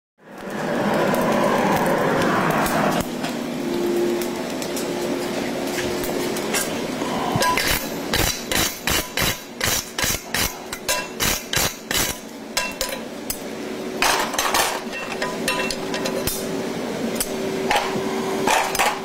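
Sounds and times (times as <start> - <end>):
steady rushing noise: 0.2 - 8.6
hammer striking steel punch: 7.4 - 13.0.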